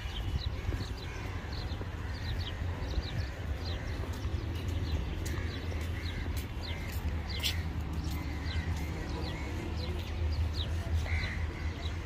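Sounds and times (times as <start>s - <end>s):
low rumble of wind: 0.0s - 12.0s
small birds chirping: 0.0s - 12.0s.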